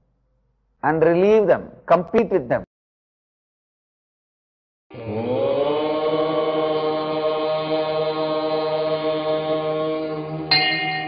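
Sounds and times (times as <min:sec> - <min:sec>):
devotional chanting: 0:04.9 - 0:11.0
low drone: 0:04.9 - 0:11.0.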